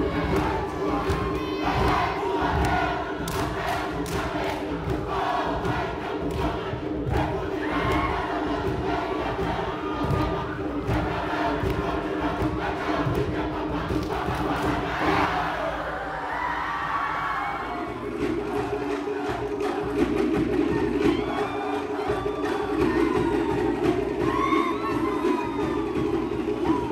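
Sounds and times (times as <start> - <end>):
crowd shouting: 5.1 - 10.5, 14.2 - 18.6, 20.7 - 26.9.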